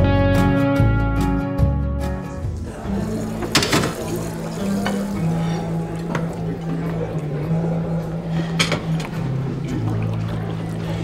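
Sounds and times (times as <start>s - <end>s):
glass bottles clinking: 3.2s - 7.0s.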